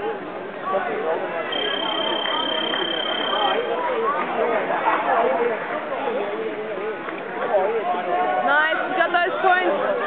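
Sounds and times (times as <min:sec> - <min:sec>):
indistinct voices in sports hall: 0:00.0 - 0:10.0.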